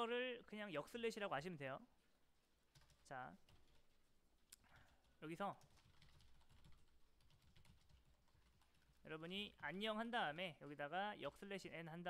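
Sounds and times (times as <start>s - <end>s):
typing on computer keyboard: 2.7s - 3.9s, 5.6s - 9.7s.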